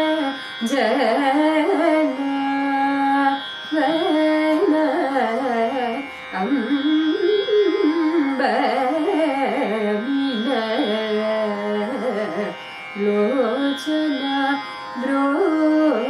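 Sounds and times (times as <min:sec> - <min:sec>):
woman singing: 0:00.0 - 0:16.0.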